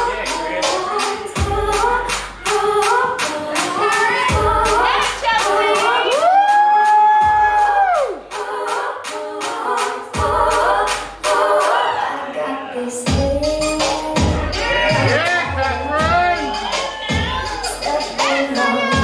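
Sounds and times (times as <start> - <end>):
dance song with sung vocal: 0.0 - 19.0.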